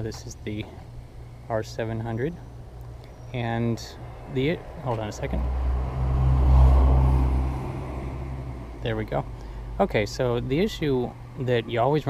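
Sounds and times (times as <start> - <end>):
car passing by: 5.3 - 8.8.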